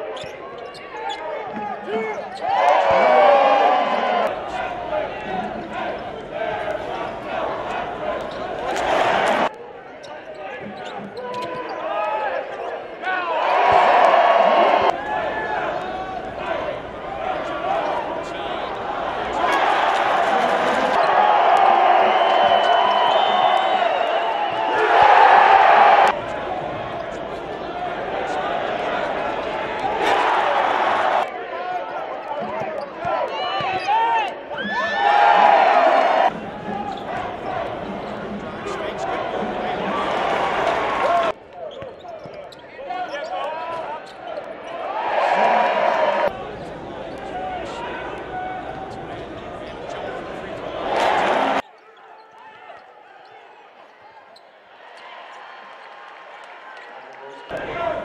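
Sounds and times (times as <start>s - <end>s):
crowd noise and voices: 0.0s - 58.0s.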